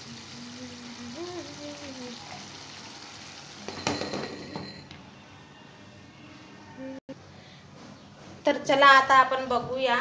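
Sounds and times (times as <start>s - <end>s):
curry sizzling in a pan: 0.0s - 4.1s
glass lid clinking on pan: 3.7s - 4.9s.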